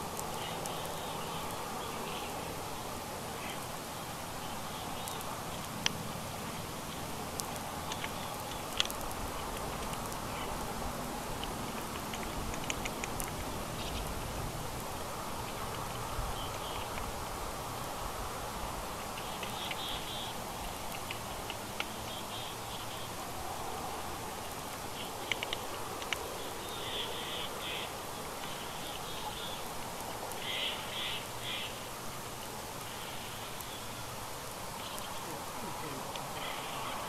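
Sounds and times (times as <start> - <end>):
small birds calling: 0.0 - 37.0
steady background hiss: 0.0 - 37.0
sharp clicks: 11.4 - 13.5, 25.2 - 26.2.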